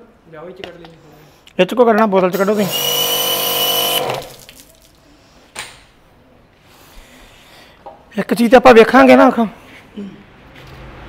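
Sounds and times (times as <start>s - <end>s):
pressure washer motor whining: 2.4s - 4.4s.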